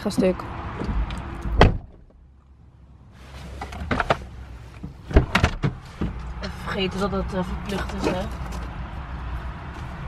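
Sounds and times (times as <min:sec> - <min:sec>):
car cabin hum: 0:03.2 - 0:10.0.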